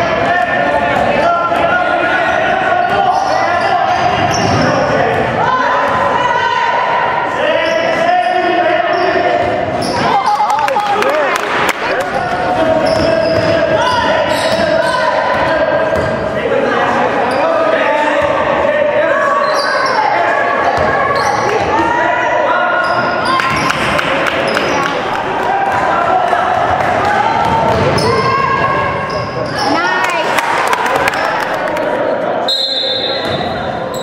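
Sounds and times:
players and spectators shouting: 0:00.0 - 0:34.0
basketball bouncing on wooden court: 0:12.4 - 0:13.6, 0:26.8 - 0:29.2.

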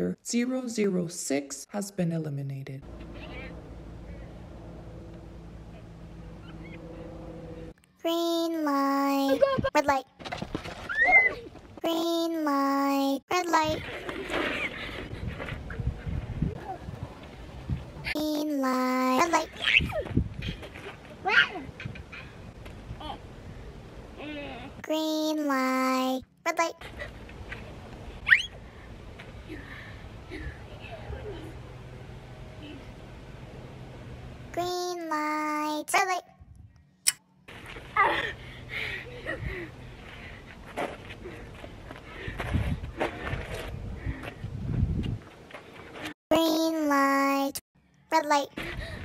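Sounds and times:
footsteps on a paved path: 0:37.5 - 0:38.2, 0:40.0 - 0:46.2.

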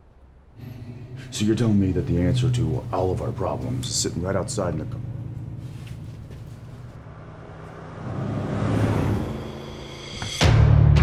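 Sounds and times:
low steady hum: 0:00.0 - 0:09.6
vehicle passing: 0:05.1 - 0:10.4.

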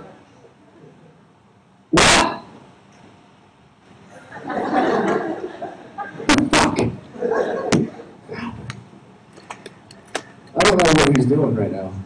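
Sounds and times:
low hall room noise: 0:00.0 - 0:12.0
sudden loud burst of noise: 0:06.3 - 0:07.0.

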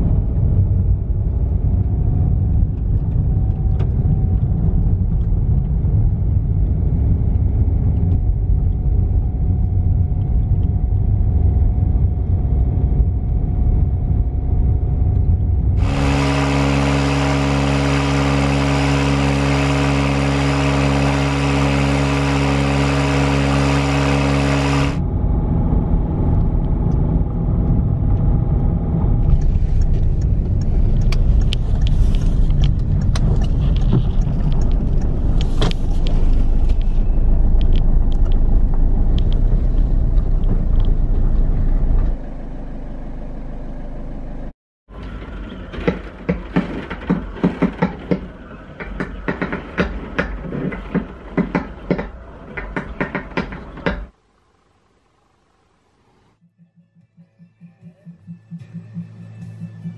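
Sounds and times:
car road and engine rumble: 0:00.0 - 0:57.2.

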